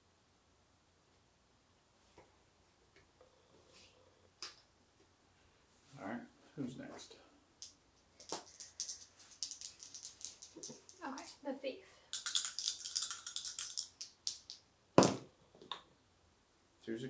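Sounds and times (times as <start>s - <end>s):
game pieces clicking on tabletop: 7.6s - 11.4s, 12.1s - 14.6s.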